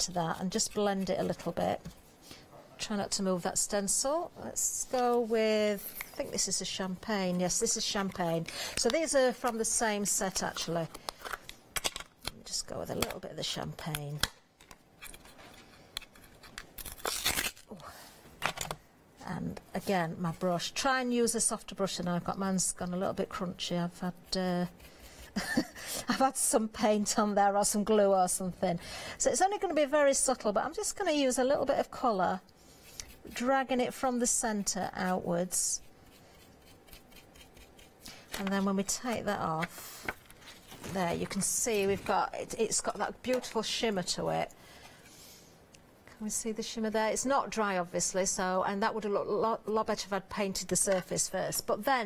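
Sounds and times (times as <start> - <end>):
dry paintbrush scratching: 21.9 - 25.5, 32.8 - 41.0.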